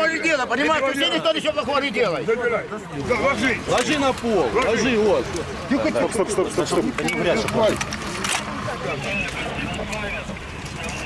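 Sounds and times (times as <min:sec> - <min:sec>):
men speaking: 0:00.0 - 0:11.0
outdoor background noise: 0:00.0 - 0:11.0.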